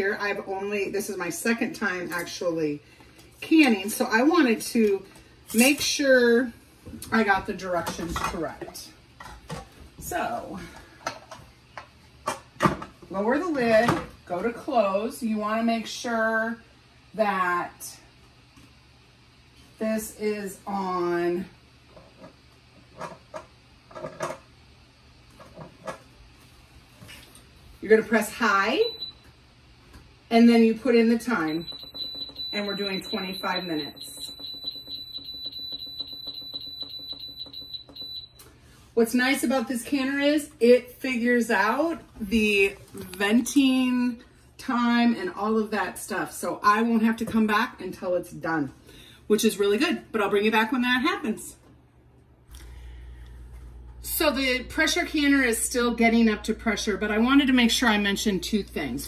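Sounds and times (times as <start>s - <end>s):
rapid high-pitched electronic beeps: 31.5s - 38.3s.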